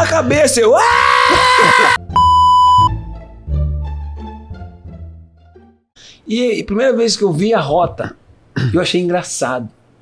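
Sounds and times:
man screaming: 0.6s - 2.0s
electronic beep: 2.2s - 2.9s.

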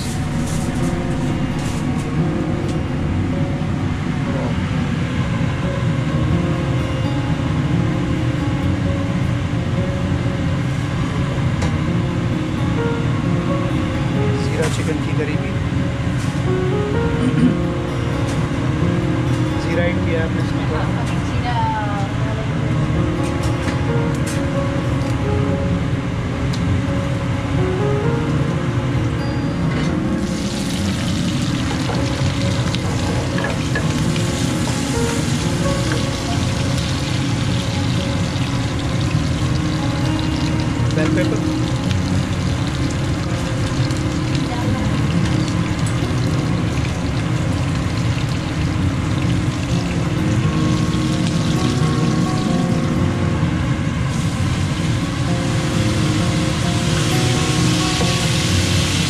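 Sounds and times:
seeds and pepper sizzling in oil: 30.2s - 52.9s, 54.1s - 59.0s.

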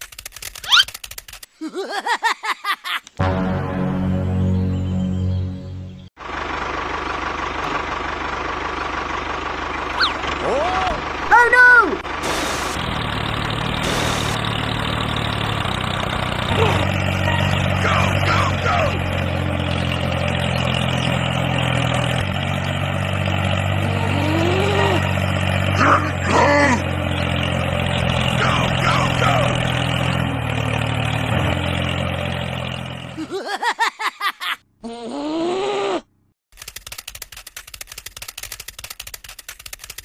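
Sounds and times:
tractor engine running: 6.2s - 33.2s, 36.2s - 40.0s
rising and falling vocal cries: 16.5s - 17.0s, 23.8s - 27.0s.

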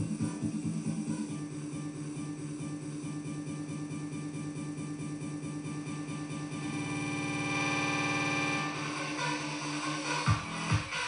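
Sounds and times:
electronic dance music build-up: 0.0s - 11.0s.

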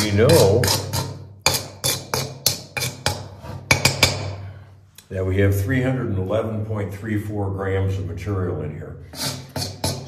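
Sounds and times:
metal spoon scraping steel pan: 0.0s - 4.3s, 9.1s - 10.0s.

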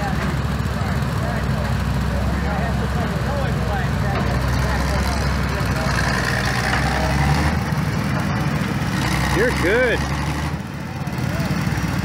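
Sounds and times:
tractor engines running: 0.0s - 12.0s.

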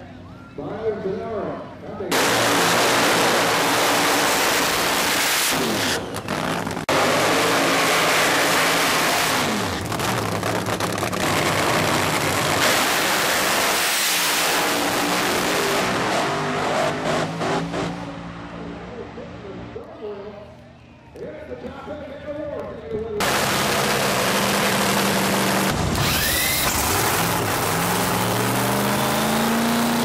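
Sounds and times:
drag racing engines at full throttle: 1.7s - 20.4s, 23.2s - 30.0s
tyres spinning in burnout: 23.2s - 30.0s.

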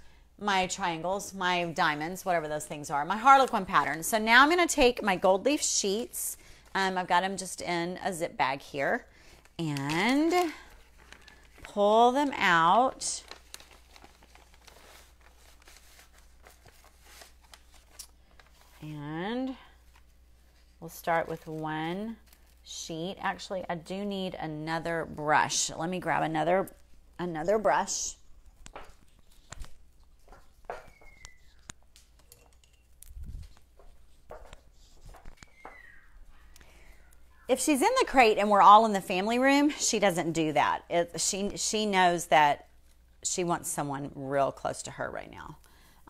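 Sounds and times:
plastic bag crinkling: 9.2s - 18.9s
faint footsteps: 33.1s - 36.4s.

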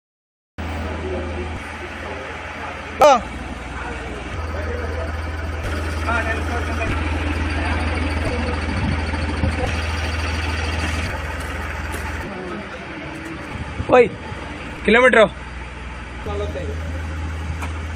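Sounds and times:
diesel engine idling: 0.6s - 17.9s.

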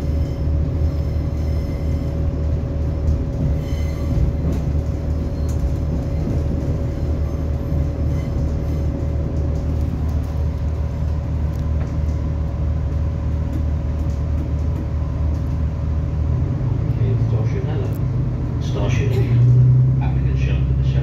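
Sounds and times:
train rumbling along track: 0.0s - 21.0s.

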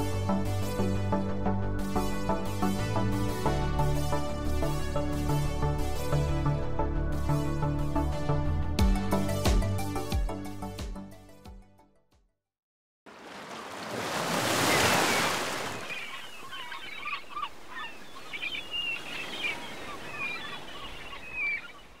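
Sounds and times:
waves washing in: 13.1s - 16.7s
birds chirping: 13.5s - 22.0s.

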